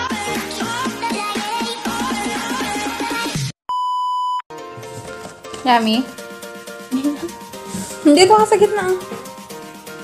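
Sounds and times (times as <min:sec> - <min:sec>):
background music: 0:00.0 - 0:03.5, 0:04.5 - 0:10.0.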